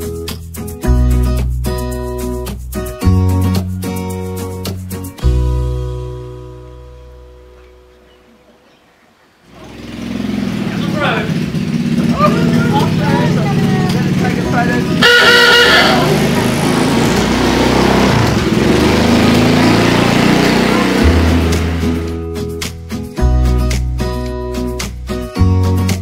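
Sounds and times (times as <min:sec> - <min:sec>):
small engine running: 0:09.5 - 0:22.1
people talking: 0:10.6 - 0:17.1, 0:20.3 - 0:21.3
loud pitched sound: 0:14.9 - 0:22.2.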